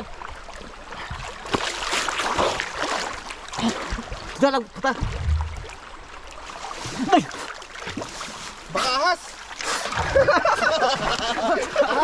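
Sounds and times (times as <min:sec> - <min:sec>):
water sloshing and lapping: 0:00.0 - 0:12.0
low rumble: 0:05.0 - 0:05.8.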